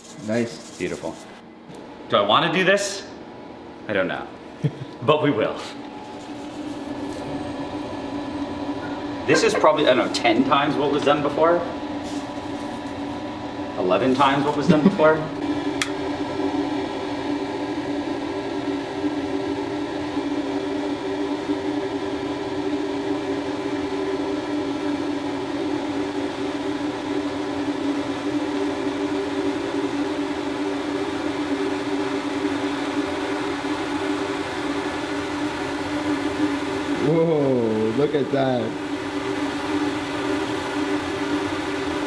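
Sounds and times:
droning mechanical hum: 0.0s - 42.0s.

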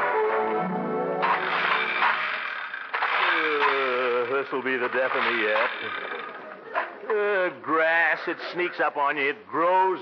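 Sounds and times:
orchestral music: 0.0s - 1.9s
push lawnmower whirring: 1.2s - 6.8s.

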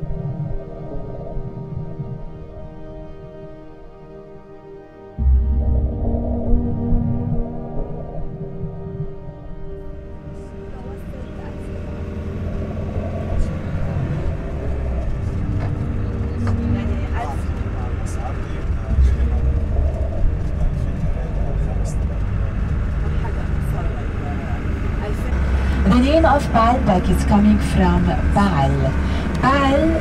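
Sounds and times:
bus engine and road rumble: 10.1s - 30.0s
passenger chatter: 10.2s - 30.0s.

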